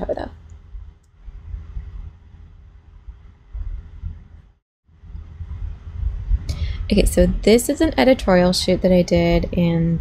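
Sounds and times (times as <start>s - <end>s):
faint steady hum: 0.0s - 10.0s
low background rumble: 0.0s - 10.0s.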